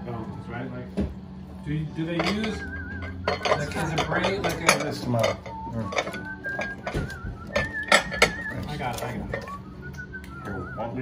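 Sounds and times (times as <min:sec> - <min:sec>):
ceramic plates and utensils clinking: 0:01.9 - 0:09.7
person whistling a high note: 0:02.4 - 0:03.9, 0:05.4 - 0:11.0.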